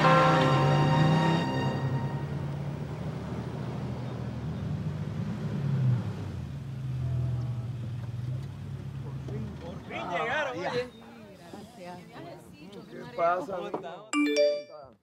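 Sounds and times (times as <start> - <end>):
vehicle engines driving past: 0.0 - 10.6.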